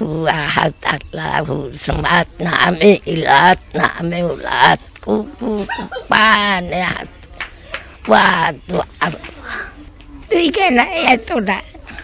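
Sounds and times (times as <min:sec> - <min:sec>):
elderly woman talking: 0:00.0 - 0:12.0.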